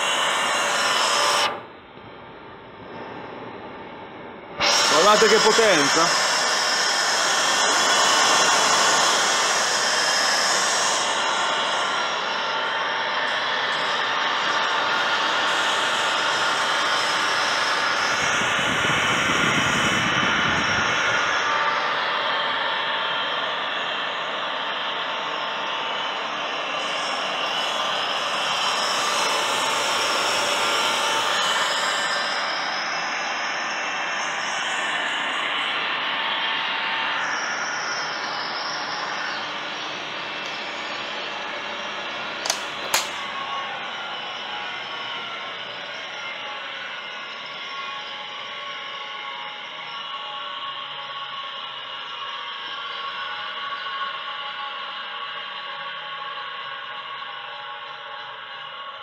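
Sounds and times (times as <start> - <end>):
electric motor whirring and whining: 0.0 - 1.7, 4.6 - 24.0.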